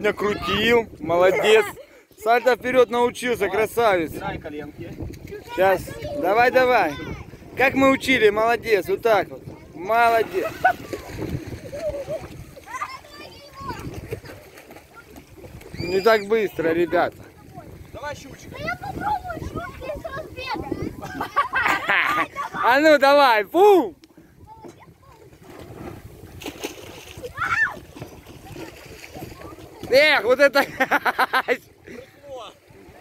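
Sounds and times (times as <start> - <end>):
wind rumbling on microphone: 0.0 - 1.8, 2.4 - 22.8, 23.7 - 31.0
shallow water splashing: 8.6 - 22.6, 23.5 - 33.0
bare feet running on wet deck: 26.4 - 30.0.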